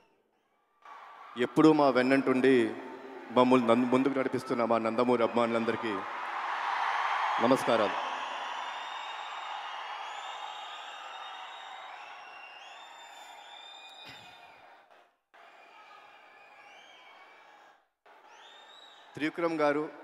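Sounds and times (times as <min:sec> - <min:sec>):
crowd cheering: 0:00.7 - 0:20.0
short sharp whistles: 0:08.9 - 0:14.6.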